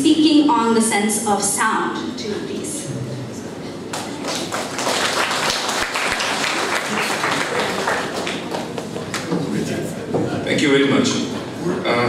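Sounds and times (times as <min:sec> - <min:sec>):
audience applauding: 0:03.9 - 0:09.5.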